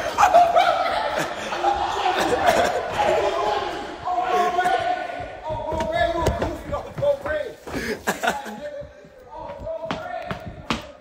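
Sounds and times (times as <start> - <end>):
young men shouting: 0.0 - 7.5.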